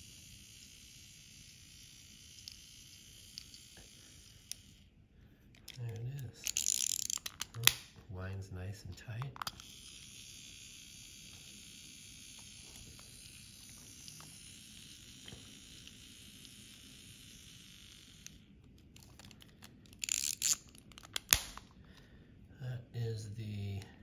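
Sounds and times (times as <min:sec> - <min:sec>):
plastic capsule snapping shut: 0:06.4 - 0:08.0, 0:09.2 - 0:09.6, 0:19.9 - 0:21.7.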